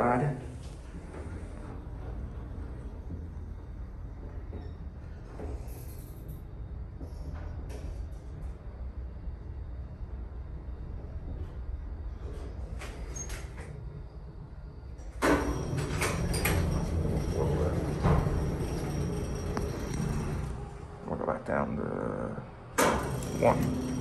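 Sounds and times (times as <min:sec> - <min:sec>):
elevator doors sliding open: 0:00.0 - 0:06.6, 0:11.0 - 0:24.0
elevator hum: 0:00.0 - 0:24.0.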